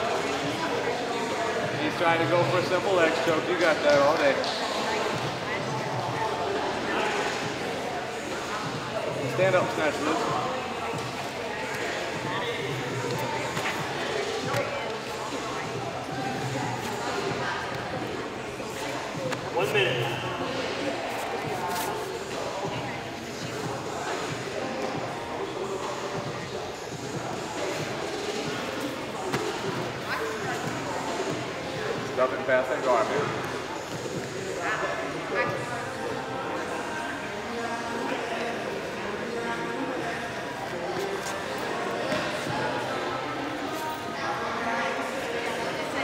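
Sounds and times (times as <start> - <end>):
many voices echoing: 0.0 - 46.0.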